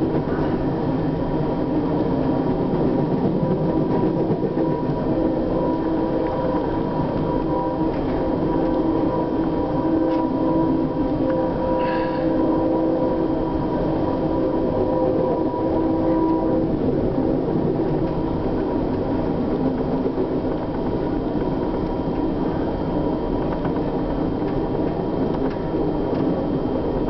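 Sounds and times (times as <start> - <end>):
faint steady whine: 0.0 - 27.0
train rumble from inside coach: 0.0 - 27.0
train rushing past alongside: 0.0 - 27.0.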